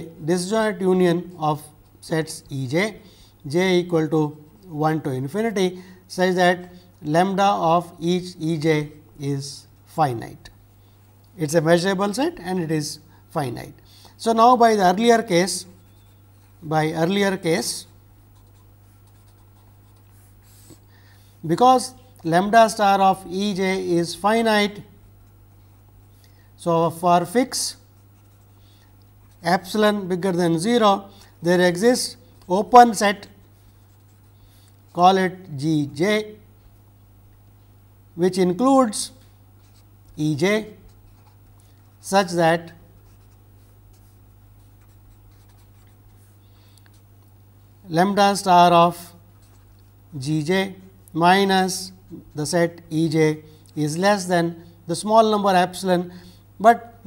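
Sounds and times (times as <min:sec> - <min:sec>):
low steady hum: 0:00.0 - 0:57.0
marker pen scratching paper: 0:15.8 - 0:17.7, 0:18.3 - 0:20.9, 0:27.7 - 0:28.6, 0:32.4 - 0:34.4, 0:39.6 - 0:40.2, 0:40.8 - 0:42.1, 0:43.0 - 0:47.0, 0:49.3 - 0:50.0.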